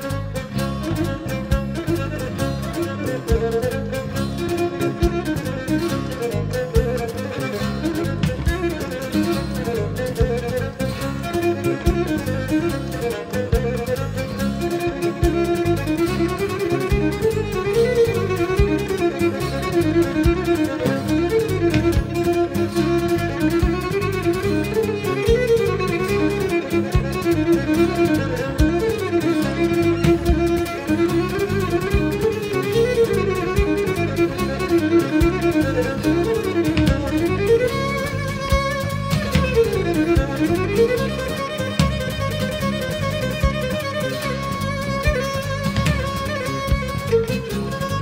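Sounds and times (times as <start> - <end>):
bowed string instrument melody: 0.0 - 48.0
rhythmic accompaniment: 0.0 - 48.0.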